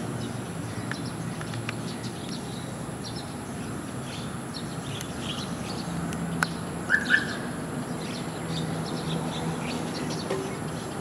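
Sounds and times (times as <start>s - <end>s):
small birds chirping: 0.1s - 11.0s.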